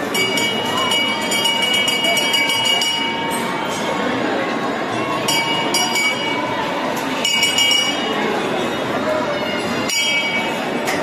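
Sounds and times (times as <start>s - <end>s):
metal temple bells clanging: 0.0s - 3.8s, 5.2s - 6.5s, 7.2s - 8.2s, 9.9s - 10.7s
crowd murmur: 0.0s - 11.0s.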